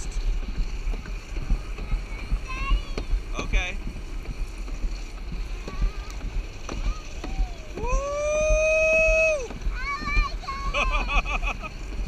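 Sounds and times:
sled rumbling down track: 0.0s - 12.0s.

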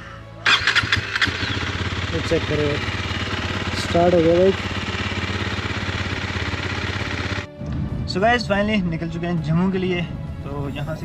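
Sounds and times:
motorcycle engine starting and idling: 0.4s - 7.8s.

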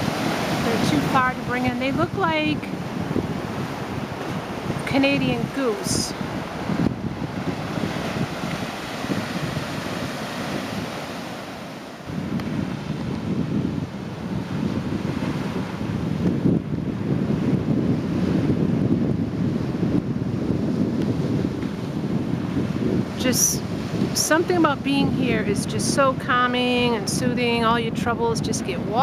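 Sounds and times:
surf washing over rocks: 0.0s - 29.0s
wind buffeting microphone: 0.0s - 29.0s.

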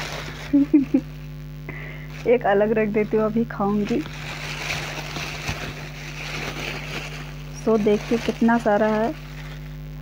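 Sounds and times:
plastic bag rustling: 0.0s - 10.0s.

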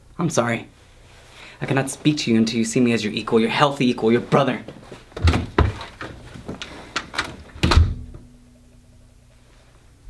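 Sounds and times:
door closing with heavy thud: 5.2s - 6.2s, 7.0s - 8.2s.

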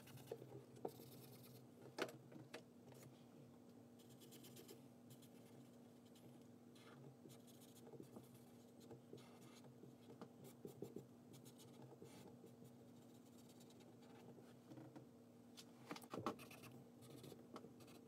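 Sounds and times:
marker scratching on paper: 16.4s - 18.0s.

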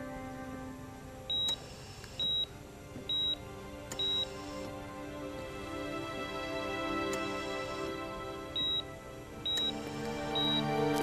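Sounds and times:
soft background music: 0.0s - 11.0s
patient monitor beeping: 1.2s - 4.8s, 7.0s - 11.0s.

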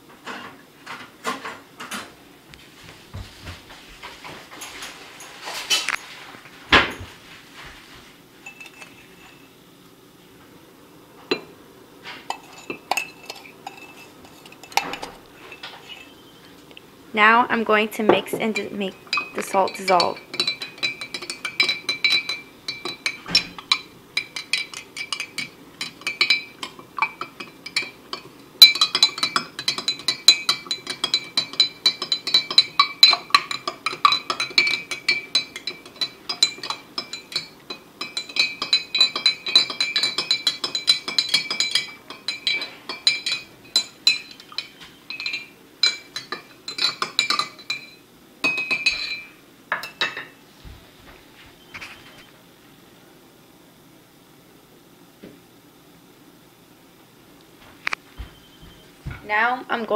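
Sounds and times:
metal spoon clinking glass jar: 8.4s - 9.5s, 12.3s - 16.2s, 18.4s - 50.3s.

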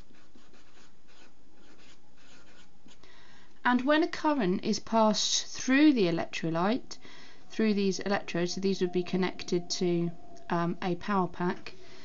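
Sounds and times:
marker writing on paper: 0.0s - 3.0s.

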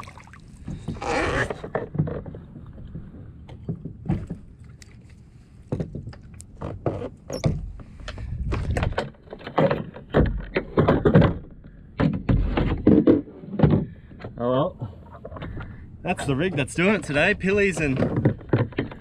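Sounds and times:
fishing gear knocking on hull: 16.2s - 19.0s.

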